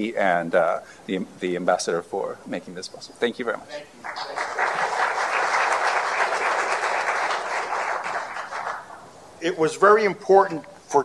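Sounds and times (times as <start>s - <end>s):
audience applauding: 4.0s - 9.1s.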